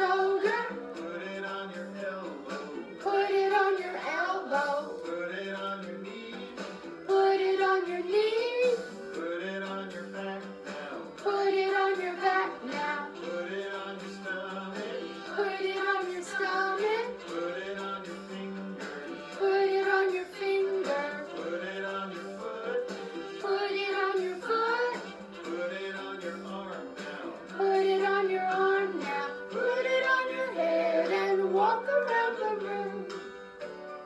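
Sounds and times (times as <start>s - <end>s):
children's action song: 0.0s - 34.0s.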